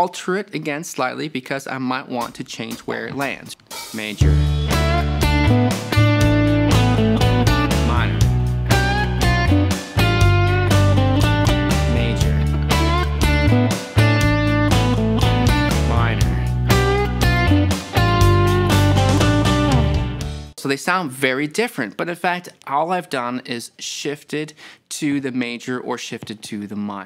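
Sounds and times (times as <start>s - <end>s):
backing jam track with bass: 2.8s - 20.6s
electric guitar lead licks: 4.2s - 20.5s.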